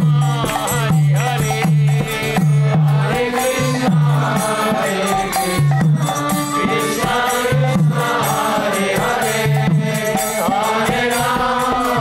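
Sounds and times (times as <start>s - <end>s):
rhythmic percussion: 0.0s - 12.0s
congregation chanting in unison: 2.4s - 12.0s.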